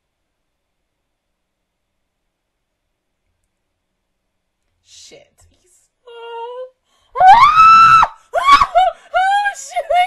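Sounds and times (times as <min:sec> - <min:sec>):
person screaming: 0:07.2 - 0:09.4.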